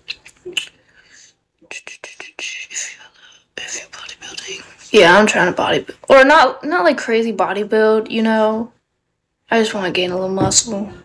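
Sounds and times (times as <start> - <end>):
woman whispering: 1.6 - 5.2.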